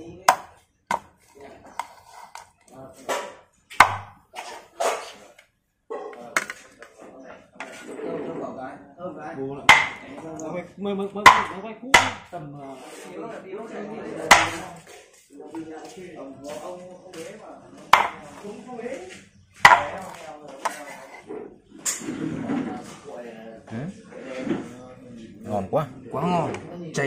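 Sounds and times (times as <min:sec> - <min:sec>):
cleaver chopping on wooden board: 0:00.3 - 0:01.1, 0:03.1 - 0:04.2, 0:09.7 - 0:10.1, 0:11.3 - 0:12.3, 0:14.3 - 0:14.7, 0:17.9 - 0:18.3, 0:19.6 - 0:20.8.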